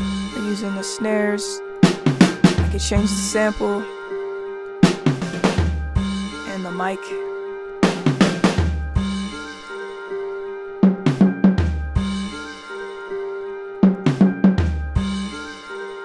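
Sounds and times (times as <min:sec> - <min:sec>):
programmed drum beat: 0:01.8 - 0:03.8, 0:04.8 - 0:06.7, 0:07.8 - 0:09.3, 0:10.8 - 0:12.3, 0:13.8 - 0:15.4.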